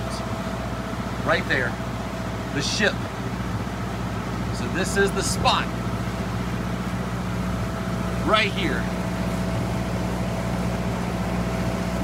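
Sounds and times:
motorboat engine humming: 0.0s - 12.0s.

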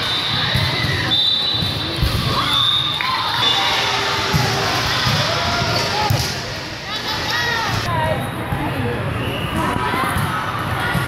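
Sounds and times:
chatter and calls in a hall: 0.0s - 11.0s.

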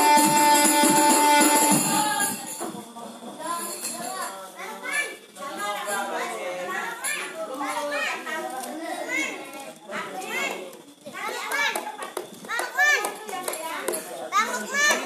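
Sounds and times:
children talking and calling out: 3.3s - 15.0s.

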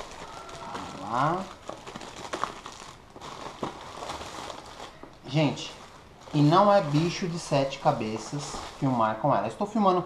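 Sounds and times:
plastic packaging crinkling: 0.0s - 9.8s.

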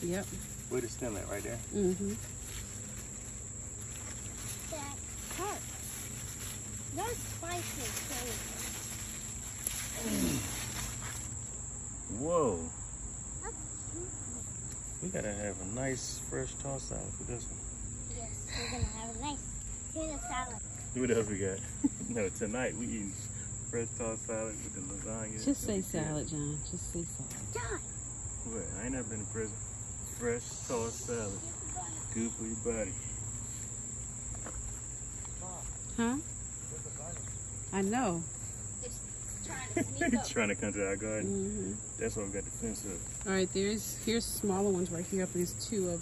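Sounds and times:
insects buzzing: 0.0s - 46.0s.

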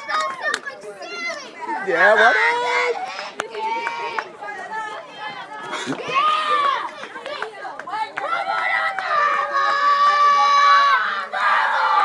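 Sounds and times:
young people shouting and cheering: 0.0s - 12.0s.

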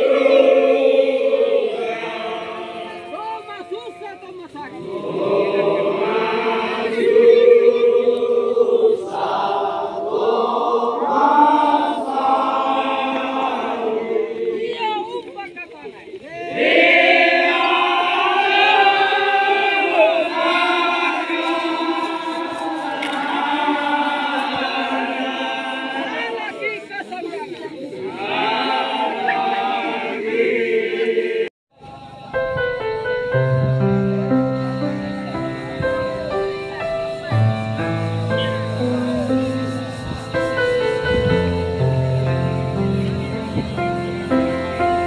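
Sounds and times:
crowd chanting in long held notes: 0.0s - 32.3s.

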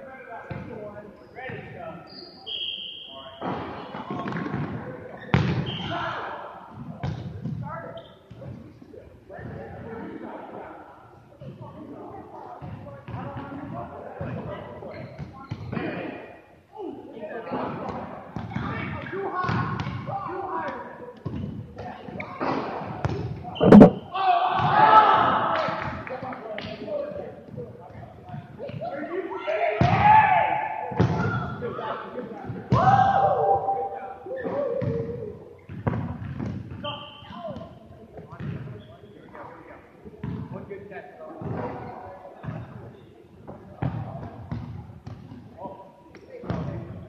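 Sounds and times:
balls bouncing on wooden floor: 23.6s - 24.0s
sharp thud of ball strike: 23.6s - 24.0s.

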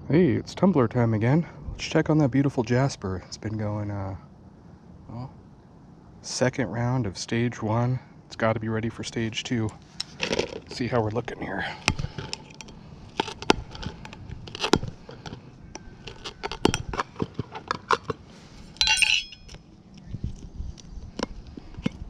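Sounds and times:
metal clicks and scrapes: 12.1s - 18.2s
metal rattle: 18.8s - 19.6s.

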